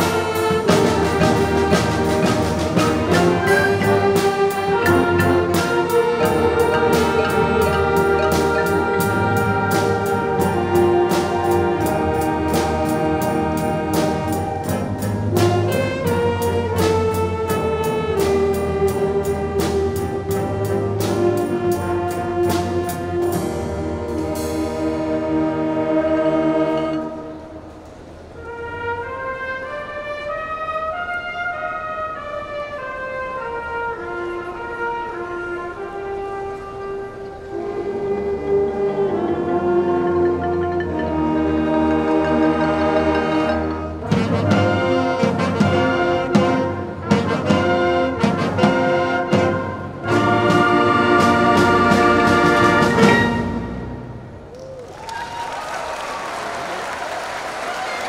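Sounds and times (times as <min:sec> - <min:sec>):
concert band playing: 0:00.0 - 0:29.8, 0:32.8 - 0:58.0.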